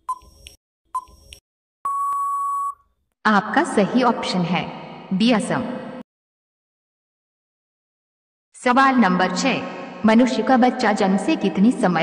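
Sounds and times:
countdown timer tick-beep: 0.0 - 2.8
long steady electronic beep: 1.8 - 2.8.

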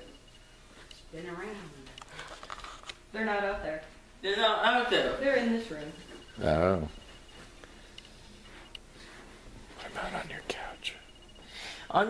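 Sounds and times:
person whispering: 9.8 - 11.1.

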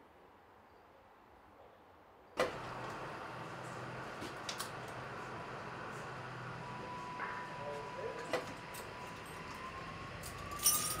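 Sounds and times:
diesel railcar engine running: 2.4 - 11.0.

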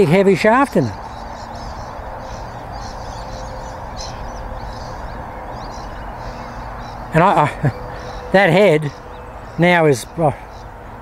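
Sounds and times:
birds chirping: 0.0 - 11.0
steady background rush: 0.0 - 11.0.

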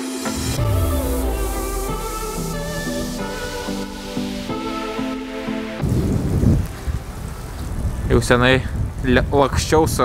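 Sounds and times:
wind buffeting microphone: 5.8 - 10.0.

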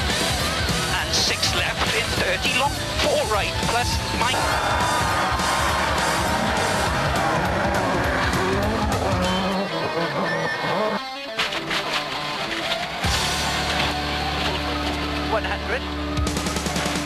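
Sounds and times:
background music: 0.0 - 17.0
tyres skidding and squealing: 0.0 - 17.0
rally car engine running hard: 2.8 - 9.7.

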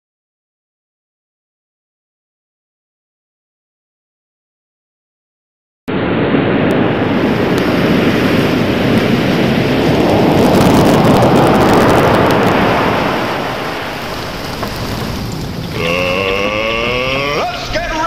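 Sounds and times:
loud steady rushing noise: 5.9 - 18.0.

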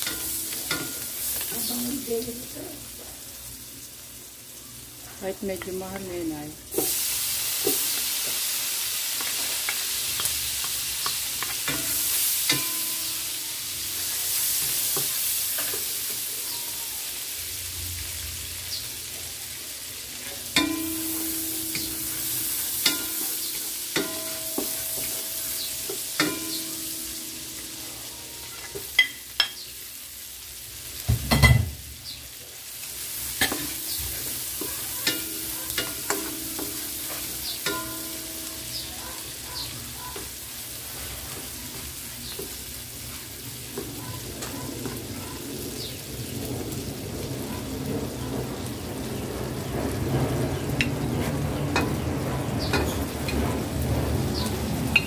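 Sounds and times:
spatula tapping ringing wok: 0.0 - 1.8, 9.2 - 16.2, 20.5 - 29.7, 33.4 - 39.5, 51.7 - 52.0, 52.6 - 53.4
shallots and garlic sizzling: 0.0 - 55.0
spatula scraping wok: 20.1 - 29.6, 32.9 - 45.8.

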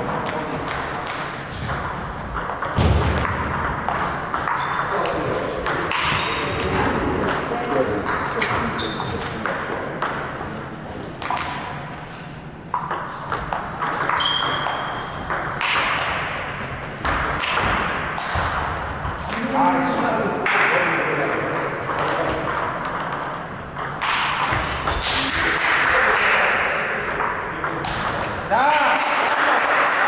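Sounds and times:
table tennis ball clicking: 2.3 - 10.3, 11.2 - 11.6, 12.7 - 16.2, 21.8 - 25.0.

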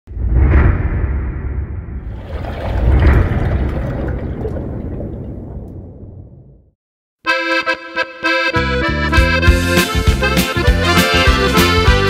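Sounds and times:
deep rumbling whoosh: 0.1 - 6.8.

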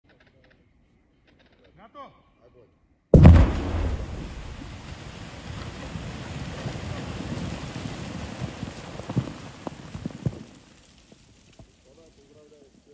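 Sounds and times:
blast rumble: 3.2 - 8.3
water and ice pattering down: 3.2 - 12.9.

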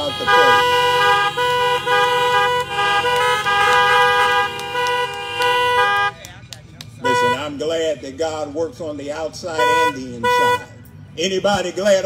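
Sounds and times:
car horns honking: 0.0 - 12.0.

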